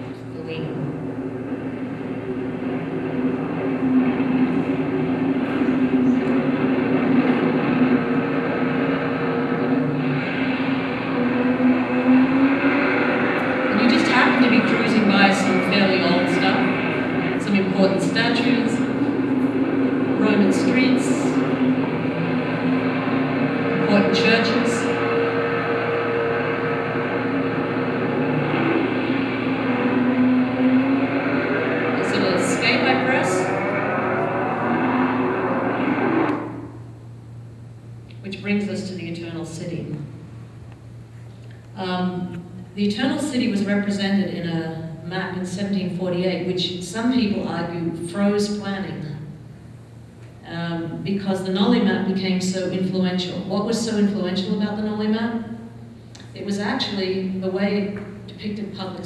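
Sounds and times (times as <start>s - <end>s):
engine and traffic noise over loudspeakers: 0.0s - 59.0s
low hum: 0.0s - 59.0s.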